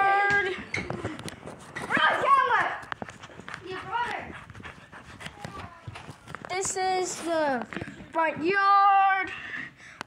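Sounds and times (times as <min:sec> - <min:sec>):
quick running footsteps: 0:01.4 - 0:08.4.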